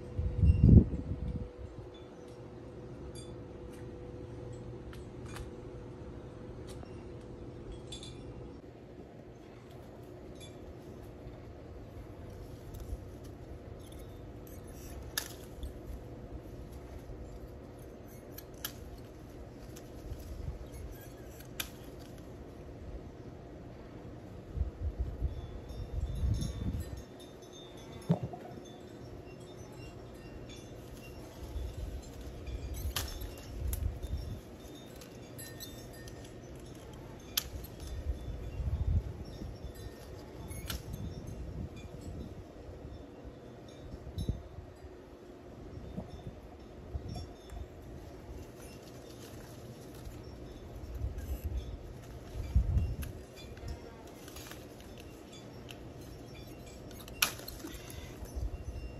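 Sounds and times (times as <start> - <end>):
low steady background noise: 0.0 - 58.9
pruning shears snipping: 12.0 - 22.4, 30.9 - 38.1, 48.4 - 58.3
pruning shears snipping stem: 14.5 - 15.9, 16.7 - 22.3, 32.2 - 33.9, 56.9 - 58.3.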